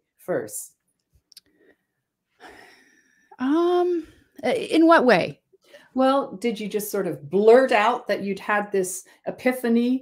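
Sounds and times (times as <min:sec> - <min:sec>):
speech: 0:00.2 - 0:00.8, 0:03.4 - 0:05.4, 0:06.0 - 0:10.0.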